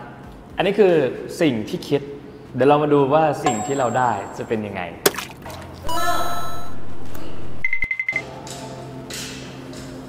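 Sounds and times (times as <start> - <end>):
quiet background music: 0.0 - 10.0
jingle with rising bright tones: 3.5 - 4.5.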